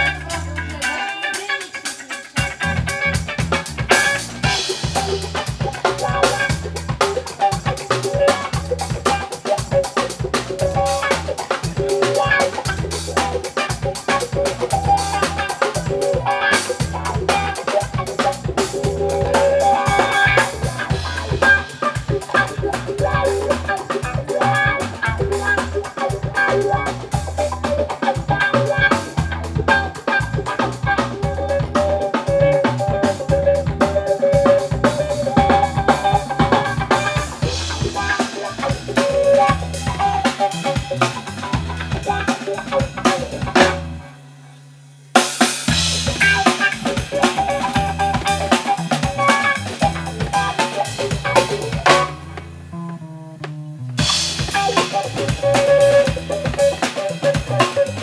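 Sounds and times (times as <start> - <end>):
electric upright bass line: 0.0 - 1.2, 2.4 - 44.8, 45.6 - 58.0
drum kit groove: 0.0 - 58.0
electric guitar: 0.0 - 58.0.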